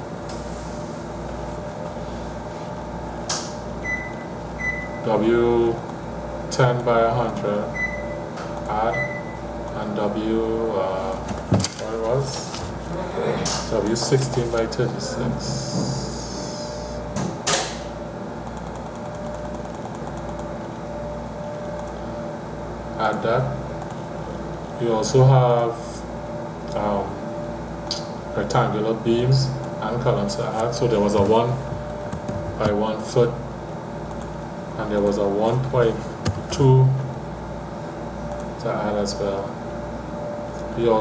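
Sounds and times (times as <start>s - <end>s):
low background hum: 0.0s - 41.0s
sharp click: 3.3s - 3.6s, 17.2s - 20.5s, 27.8s - 28.2s.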